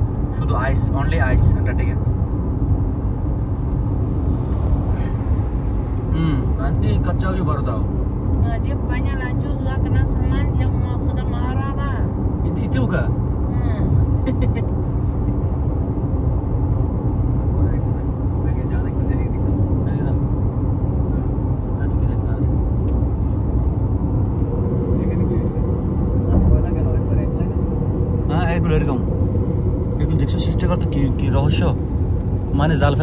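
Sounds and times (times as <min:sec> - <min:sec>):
car road and engine noise: 0:00.0 - 0:33.0.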